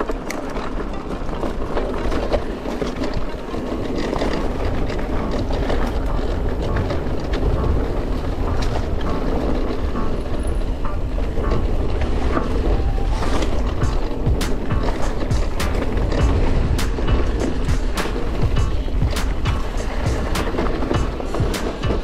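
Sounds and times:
bike rattling and clacking: 0.0 - 22.0
wind rumbling on microphone: 0.0 - 22.0.

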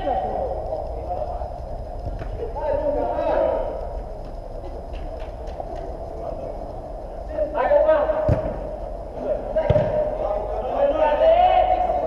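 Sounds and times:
low hall rumble: 0.0 - 12.0
players shouting: 7.2 - 12.0.

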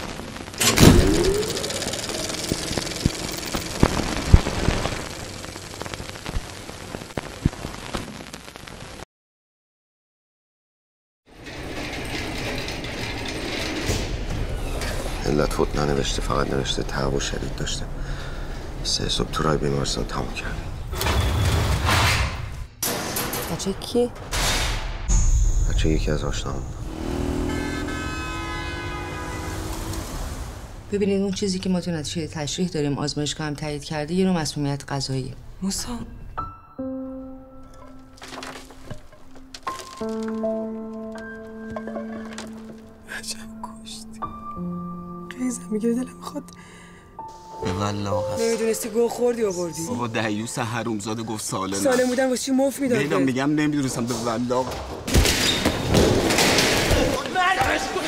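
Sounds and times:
dense crackling: 0.0 - 9.0, 37.7 - 41.6
short rising tone: 26.6 - 30.8
car horn long blast: 26.8 - 30.2
road traffic: 26.8 - 30.9.

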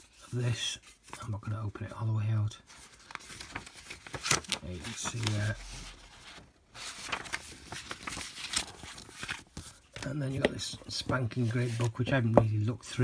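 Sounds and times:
paper rustling and crackling: 2.6 - 12.4.

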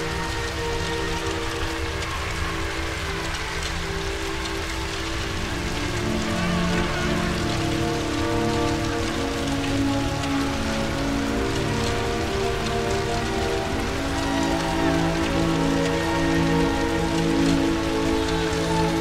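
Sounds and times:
rain hiss: 0.0 - 19.0
slow sustained music chords: 0.0 - 19.0.

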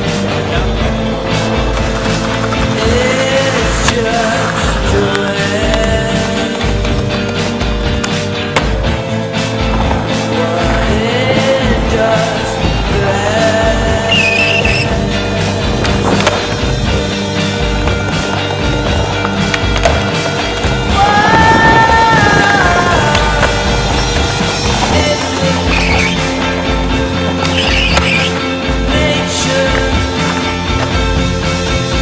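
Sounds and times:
skateboard wheels rolling on stone: 0.0 - 32.0
song playing: 0.0 - 32.0
skateboard clacks: 0.4 - 32.0.

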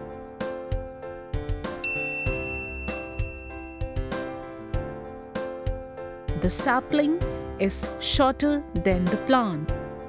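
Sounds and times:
light background music: 0.0 - 10.0
bright ding: 1.8 - 4.3.

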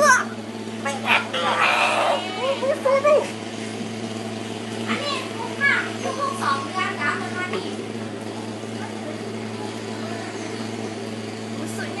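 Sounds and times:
fogging machine engine drone: 0.0 - 12.0.

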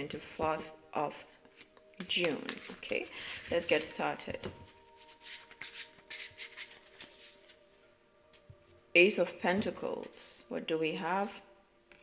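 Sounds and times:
cards being shuffled: 1.6 - 3.6, 4.7 - 7.6.

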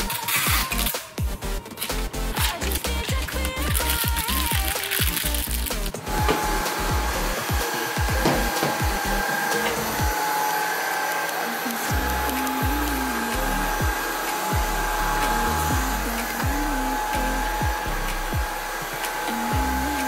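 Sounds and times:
background music with bass line: 0.0 - 10.2, 11.9 - 20.0
stick vacuum whining: 0.0 - 20.0.

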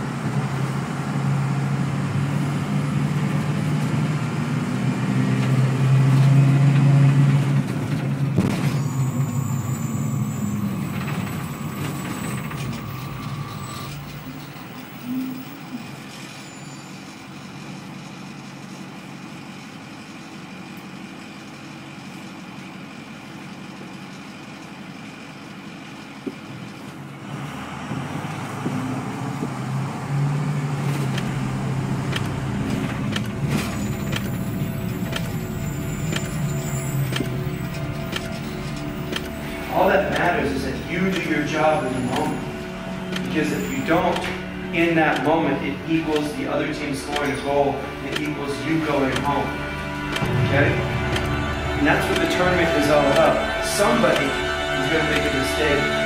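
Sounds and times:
bus engine droning: 0.0 - 56.0
thin steady whine: 8.5 - 20.4, 31.2 - 56.0
sudden sharp sound: 31.2 - 56.0.

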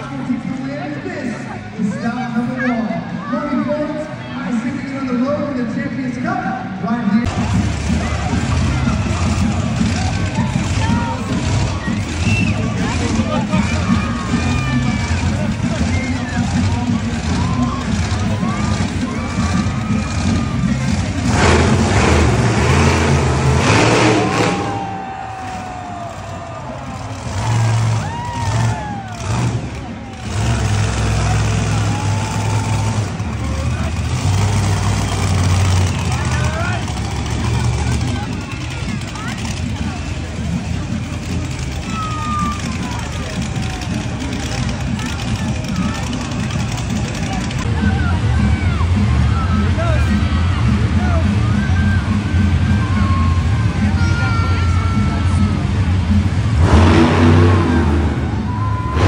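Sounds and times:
crowd voices: 0.0 - 59.0
monster truck engines rumbling: 0.0 - 59.0
children shouting: 7.9 - 16.4, 17.3 - 22.1, 23.7 - 33.0, 41.4 - 44.0, 47.3 - 55.8.

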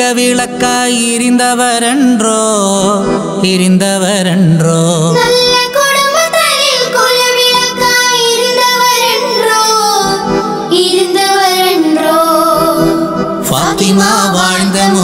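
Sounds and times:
keyboard accompaniment: 0.0 - 15.0
girls and children singing: 5.1 - 15.0.

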